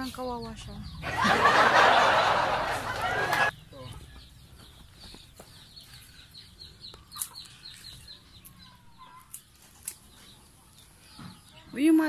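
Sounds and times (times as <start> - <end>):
chickens peeping: 3.0 - 11.8.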